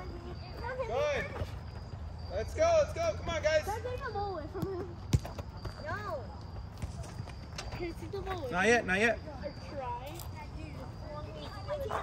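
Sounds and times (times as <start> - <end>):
soccer balls kicked on turf: 4.5 - 6.0, 6.6 - 7.4.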